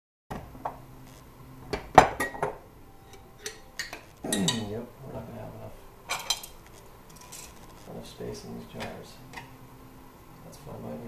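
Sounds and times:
metal tongs clinking on crock and jars: 0:03.1 - 0:04.7, 0:06.1 - 0:07.6.

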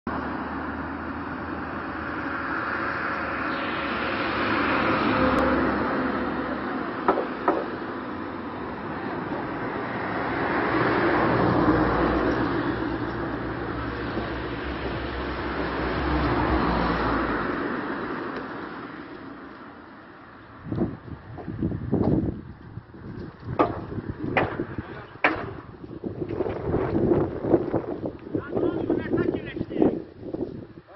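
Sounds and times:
loud outdoor noise: 0:00.1 - 0:30.9
knocks: 0:07.0 - 0:07.8, 0:23.6 - 0:25.6.

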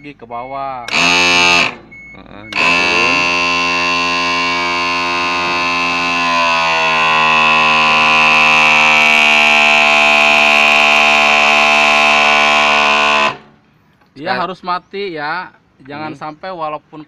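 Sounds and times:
electric hydraulic pump whine: 0:00.9 - 0:13.6.

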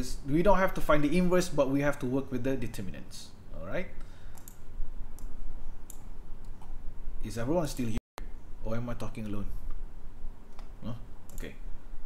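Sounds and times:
low steady hum: 0:00.0 - 0:12.0
computer mouse clicks: 0:04.3 - 0:06.8, 0:10.5 - 0:11.5.

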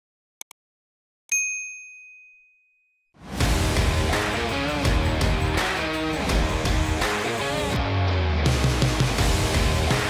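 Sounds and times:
bright bell ding: 0:01.3 - 0:03.0.

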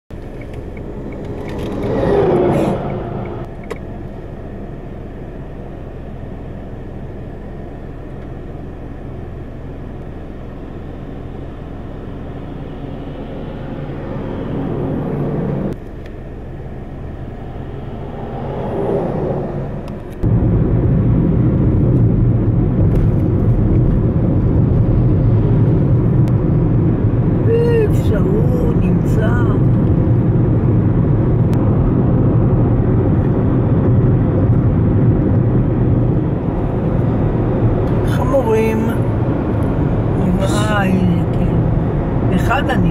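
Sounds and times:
car cabin road and engine noise: 0:00.1 - 0:42.9
lorry passing: 0:00.7 - 0:03.5, 0:16.5 - 0:20.2.

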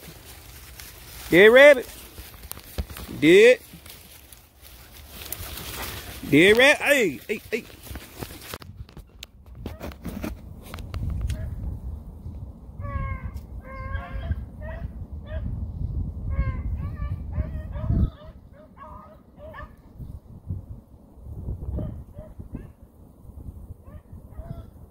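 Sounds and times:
rustling and handling noise: 0:00.0 - 0:11.4
hounds baying: 0:16.4 - 0:19.8.

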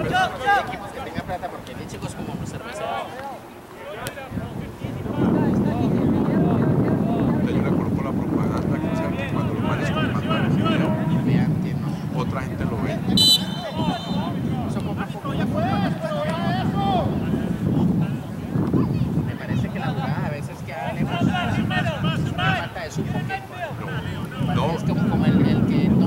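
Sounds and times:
wind rumbling on microphone: 0:00.0 - 0:03.0, 0:04.2 - 0:26.0
voices and shouts: 0:00.0 - 0:07.4, 0:08.6 - 0:11.5, 0:12.8 - 0:18.5, 0:19.3 - 0:25.3
shrill referee's whistle blast: 0:13.2 - 0:14.4.

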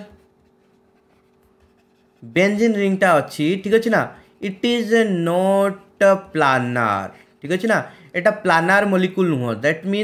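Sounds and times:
stylus scratching and tapping screen: 0:00.0 - 0:02.9
low steady hum: 0:00.0 - 0:09.9.

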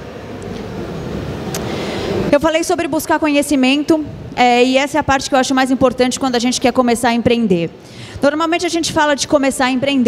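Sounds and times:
low rumble of hall background noise: 0:00.0 - 0:10.0.

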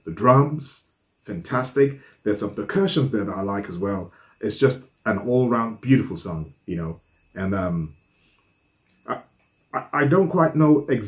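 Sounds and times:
man speaking hesitantly: 0:09.8 - 0:11.0.

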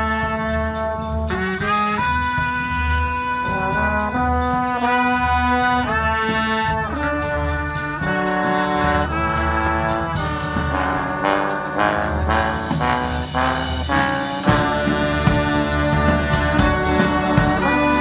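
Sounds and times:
brass band playing: 0:00.0 - 0:18.0.

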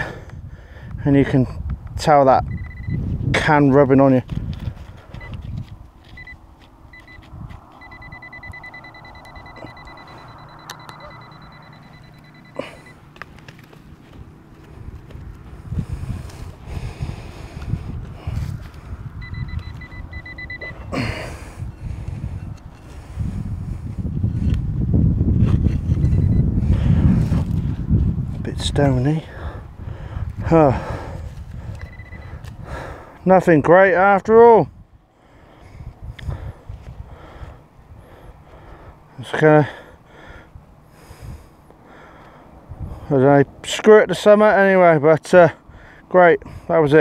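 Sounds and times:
pinpointer rapid beeping: 0:02.5 - 0:03.0, 0:06.1 - 0:13.0, 0:19.2 - 0:21.8, 0:26.0 - 0:26.5, 0:31.8 - 0:32.4.

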